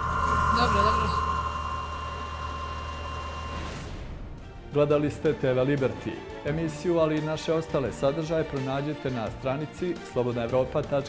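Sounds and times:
low machine hum: 0.0s - 4.4s
machine high whine: 0.0s - 4.7s.

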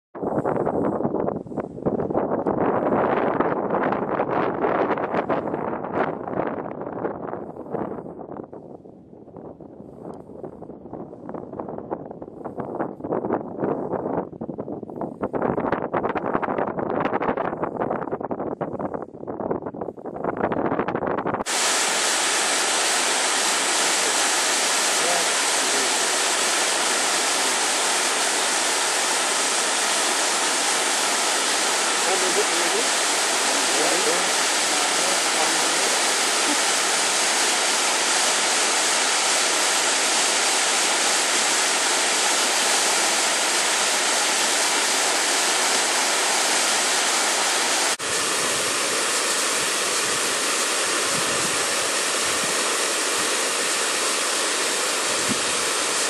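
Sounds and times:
wind buffeting microphone: 0.2s - 21.6s, 51.0s - 52.6s, 55.1s - 55.7s
waterfall rushing: 21.4s - 56.0s.

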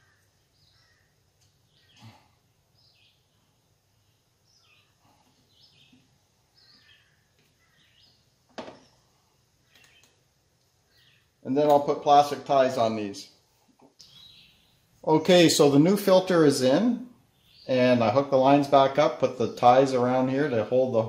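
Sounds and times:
faint bird chirps: 0.0s - 10.2s, 13.9s - 14.9s.

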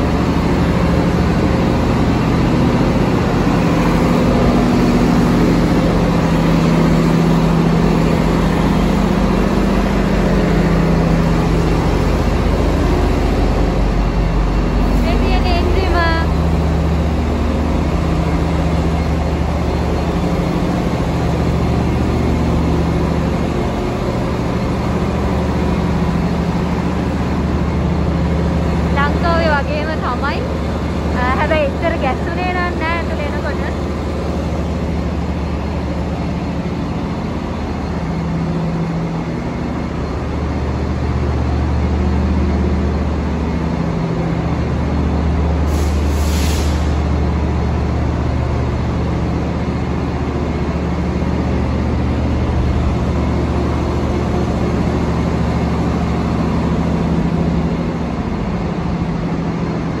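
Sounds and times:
locomotive engine idling: 0.0s - 60.0s.

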